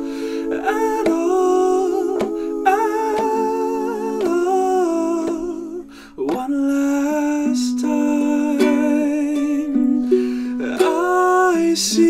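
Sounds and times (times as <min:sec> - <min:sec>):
man singing with vibrato: 0:00.0 - 0:12.0
ukulele chords: 0:00.0 - 0:12.0.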